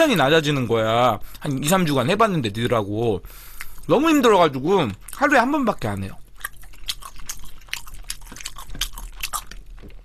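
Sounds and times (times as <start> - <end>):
person chewing crunchy food: 4.9 - 10.0.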